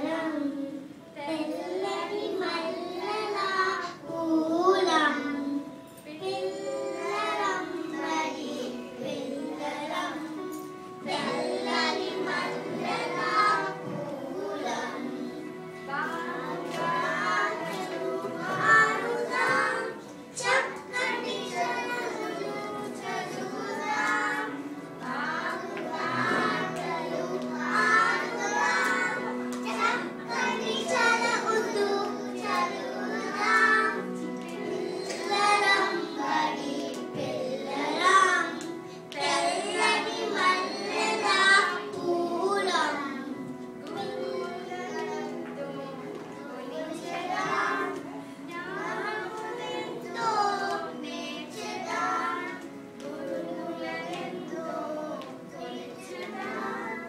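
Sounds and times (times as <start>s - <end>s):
young children singing: 0.0s - 57.0s.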